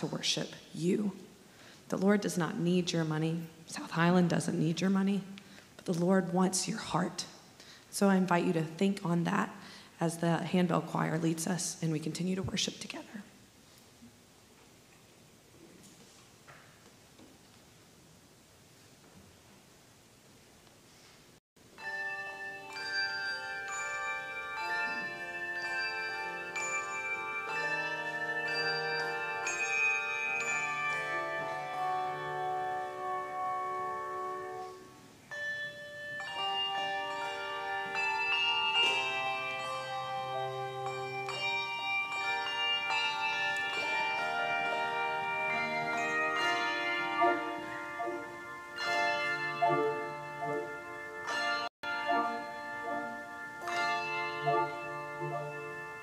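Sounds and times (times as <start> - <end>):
handbell choir ringing: 21.8 - 34.0, 35.3 - 56.0.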